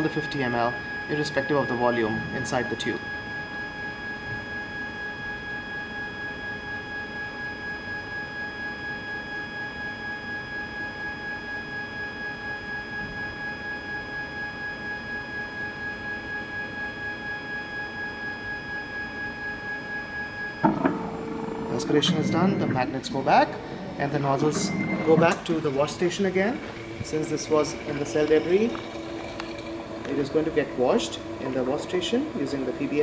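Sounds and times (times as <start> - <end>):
pulsing pump whine: 0.0 - 33.0.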